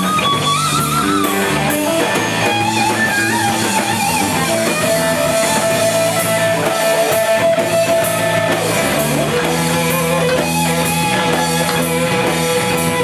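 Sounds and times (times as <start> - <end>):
bass guitar: 0.0 - 13.0
drums: 0.0 - 13.0
electric guitar lead: 0.0 - 13.0.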